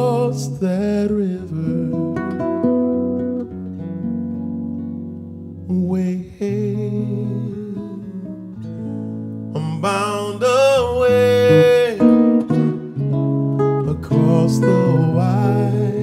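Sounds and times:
guitar playing bass notes and chords: 0.0s - 16.0s
man singing a wavering note: 13.9s - 16.0s.

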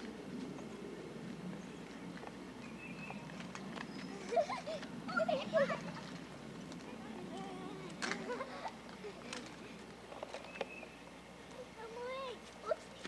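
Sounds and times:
distant children calling: 0.0s - 13.0s
faint background noise: 0.0s - 13.0s.

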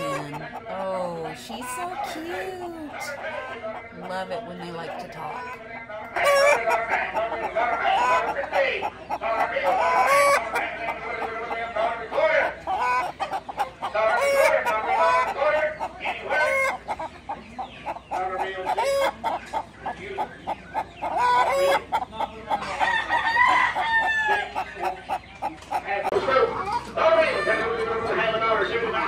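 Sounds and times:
hens clucking: 0.0s - 29.0s.

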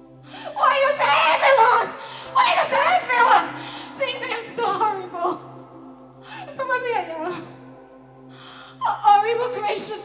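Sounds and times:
soft backing music: 0.0s - 10.0s.

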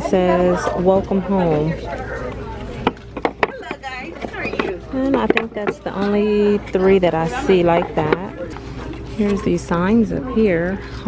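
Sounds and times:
plaques clacking together: 2.8s - 6.2s.

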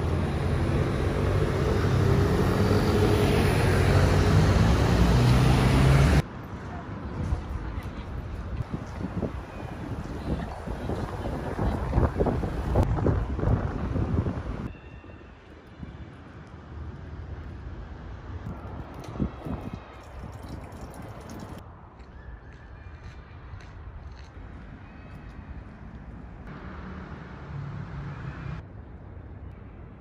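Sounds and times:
open-air ambience: 0.0s - 30.0s
wind buffeting microphone: 7.1s - 14.7s, 18.4s - 24.5s.

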